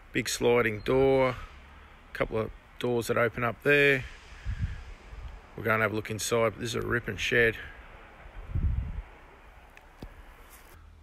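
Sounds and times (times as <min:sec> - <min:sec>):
faint outdoor background: 0:00.0 - 0:11.0
wind buffeting microphone: 0:04.0 - 0:09.6.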